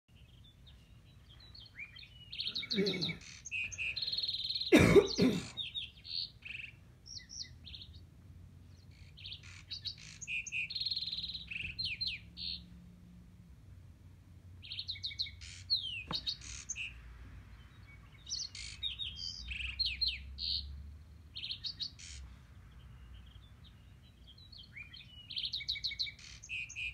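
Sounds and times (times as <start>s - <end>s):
small birds chirping: 0.1s - 26.9s.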